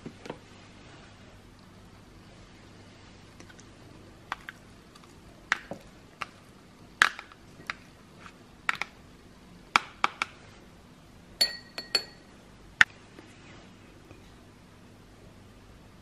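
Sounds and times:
dish ringing: 11.4 - 12.2
spoon clinking against ceramic dish: 11.4 - 12.3.

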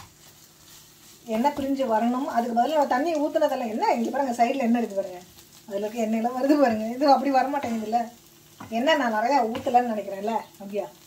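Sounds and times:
food sizzling in a pan: 0.0 - 11.0
woman talking: 1.2 - 11.0.

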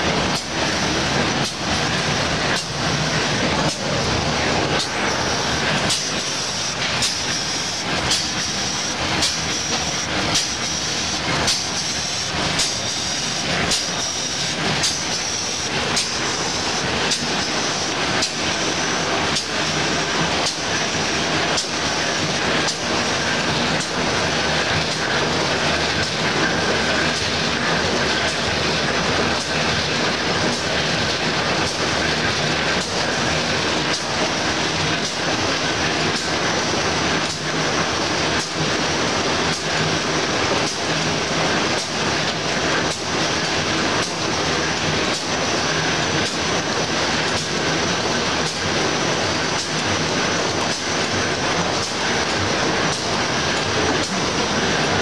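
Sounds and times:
printing machine clattering: 0.0 - 55.0
sharp machine clack: 0.0 - 55.0.

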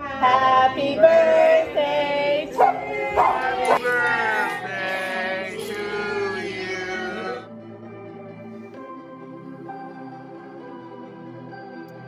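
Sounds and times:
voices singing held notes: 0.0 - 7.5.

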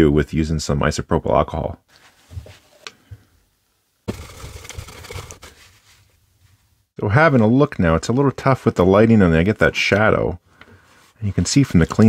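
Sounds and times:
tissue rustling on plastic: 4.1 - 6.1
gloved hands handling things: 4.1 - 6.8.

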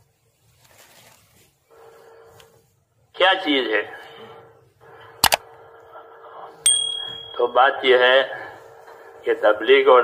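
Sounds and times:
bell ding: 6.7 - 7.7.

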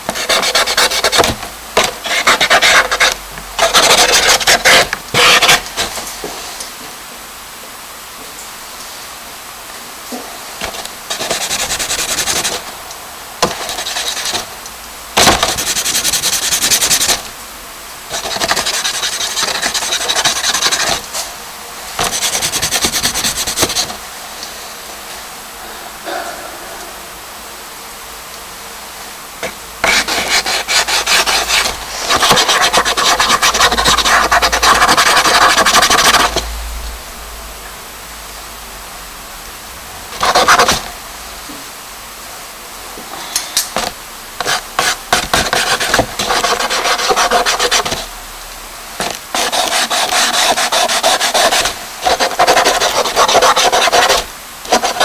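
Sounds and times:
charcoal scratching on paper: 0.1 - 5.6, 10.7 - 12.6, 13.4 - 14.5, 15.2 - 17.2, 18.1 - 21.0, 22.0 - 24.0, 29.4 - 36.4, 40.2 - 40.8, 44.4 - 48.1, 49.0 - 55.0.

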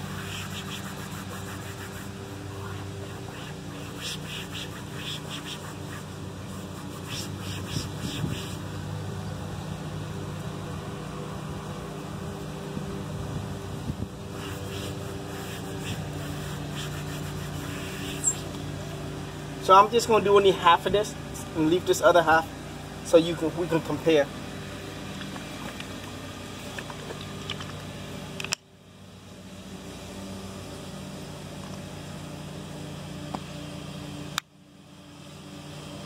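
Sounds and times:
cloth rubbing plastic: 0.0 - 8.7, 14.3 - 18.5
low mechanical hum: 0.0 - 36.0.

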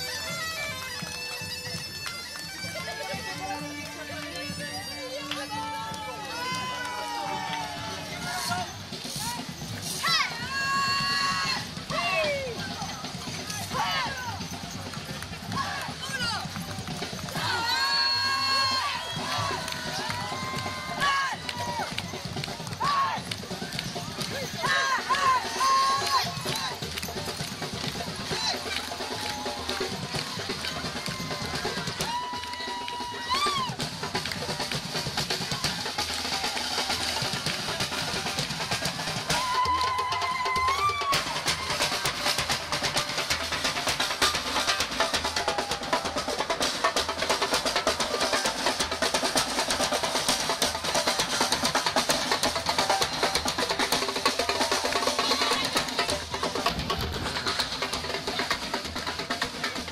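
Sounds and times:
snare and bass drums: 5.5 - 59.9.

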